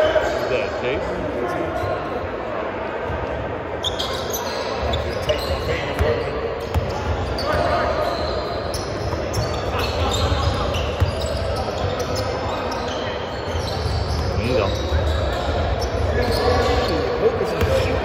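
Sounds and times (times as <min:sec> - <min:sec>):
players and spectators voices: 0:00.0 - 0:18.0
sneaker squeaks: 0:03.7 - 0:18.0.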